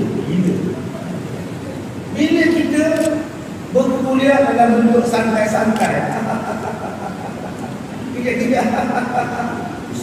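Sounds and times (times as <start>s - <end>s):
hall background hiss and hum: 0.0s - 10.0s.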